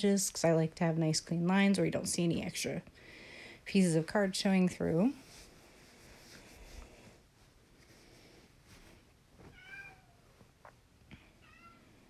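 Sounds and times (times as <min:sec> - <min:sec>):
cat meowing faintly: 0:09.5 - 0:10.3, 0:11.4 - 0:12.0.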